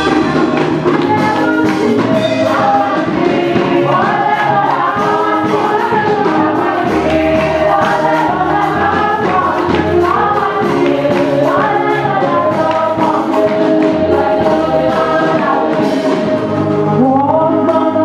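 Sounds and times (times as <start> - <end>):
church choir singing gospel: 0.0 - 18.0.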